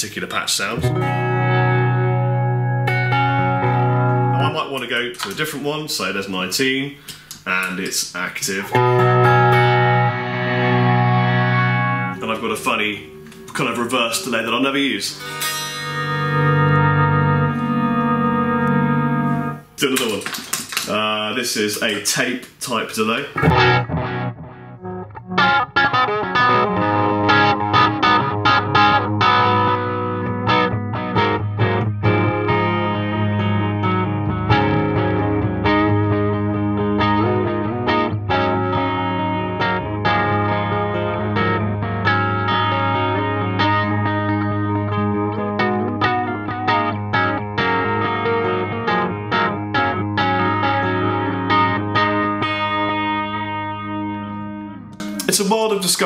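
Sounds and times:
sustained low guitar note: 0:00.8 - 0:04.4, 0:08.8 - 0:19.6
electric guitar with delay: 0:00.8 - 0:05.3, 0:08.7 - 0:20.2, 0:23.4 - 0:56.0.

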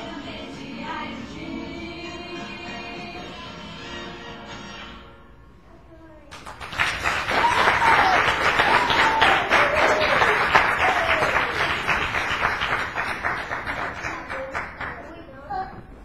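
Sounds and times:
audience applauding: 0:06.3 - 0:15.2.

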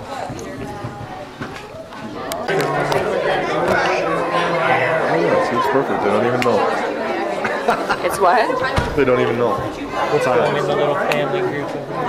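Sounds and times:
crowd chatter in hall: 0:00.0 - 0:12.0.

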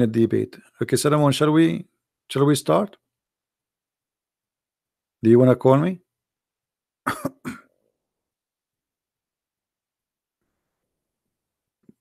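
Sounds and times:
man coughing: 0:07.1 - 0:07.8.

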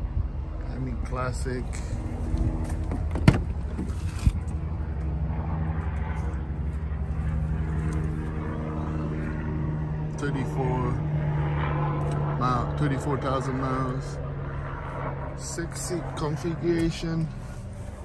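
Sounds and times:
low engine hum: 0:00.0 - 0:18.0.

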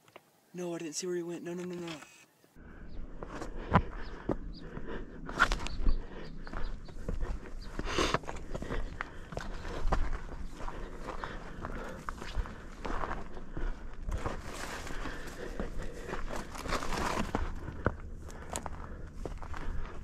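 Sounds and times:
footsteps on rocky ground: 0:03.0 - 0:20.0.

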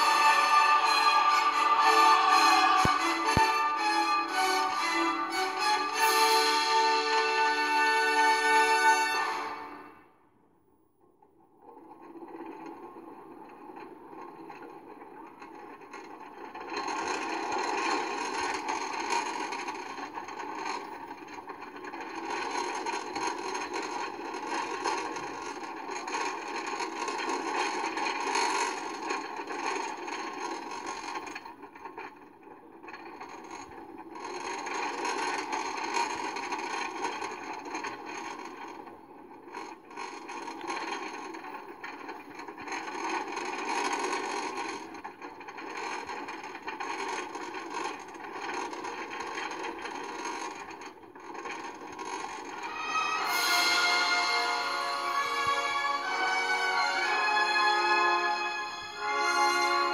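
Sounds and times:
roller coaster cars rattling: 0:00.0 - 0:10.0, 0:11.2 - 0:59.9.

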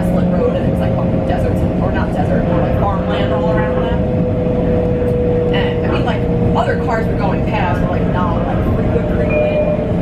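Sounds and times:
indistinct passenger conversation: 0:00.0 - 0:10.0
train wheels rumbling on rails: 0:00.0 - 0:10.0.

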